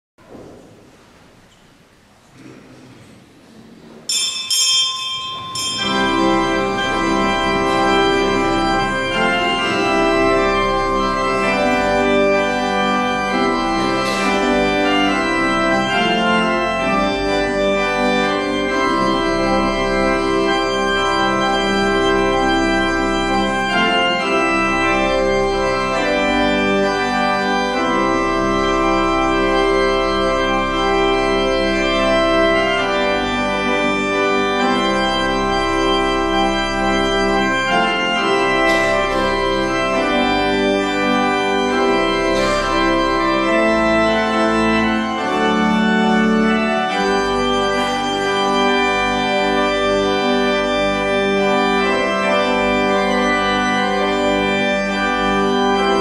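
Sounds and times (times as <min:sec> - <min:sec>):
church organ chords: 0:04.0 - 0:56.0.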